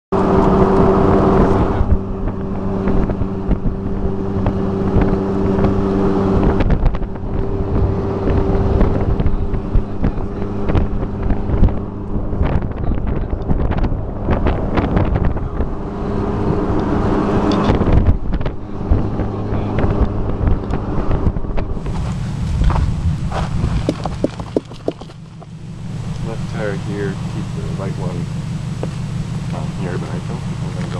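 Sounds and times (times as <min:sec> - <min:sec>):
car engine running: 0:00.1 - 0:30.9
vehicle knocks and rattles: 0:06.5 - 0:15.8, 0:17.5 - 0:25.6.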